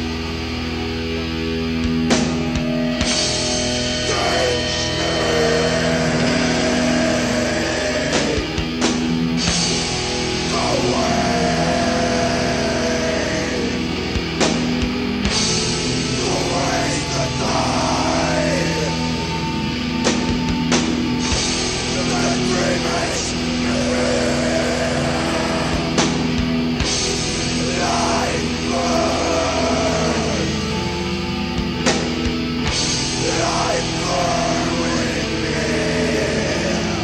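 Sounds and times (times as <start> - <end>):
distorted electric guitar drone: 0.0 - 37.0.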